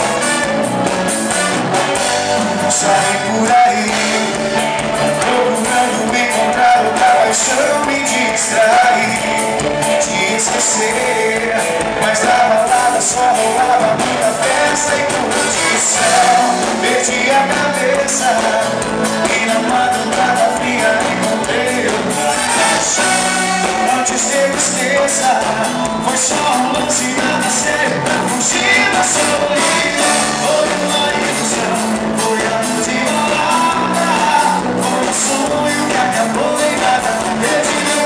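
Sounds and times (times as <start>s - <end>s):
electric guitar: 0.0s - 38.0s
live band playing: 0.0s - 38.0s
person singing lead vocal: 2.0s - 38.0s.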